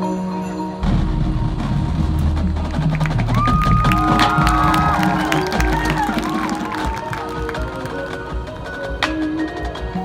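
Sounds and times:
heavy low drum hits: 0.8 - 6.2
marching band playing loudly: 0.8 - 10.0.

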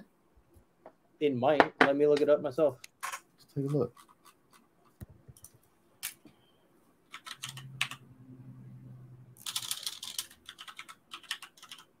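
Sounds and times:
typing on computer keyboard: 7.1 - 8.0, 9.4 - 12.0.

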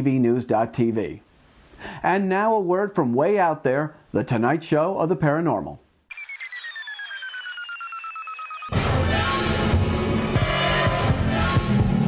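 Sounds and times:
electronic pulsing tone: 6.1 - 9.1.

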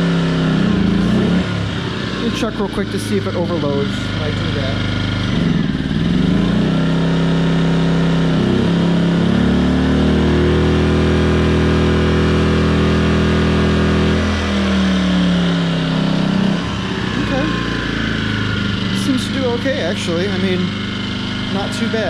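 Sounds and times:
generator engine revving: 0.0 - 22.0.

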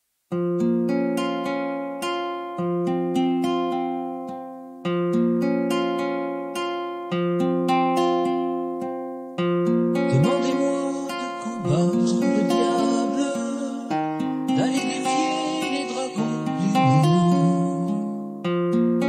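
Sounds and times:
picked guitar arpeggios: 0.4 - 19.0.

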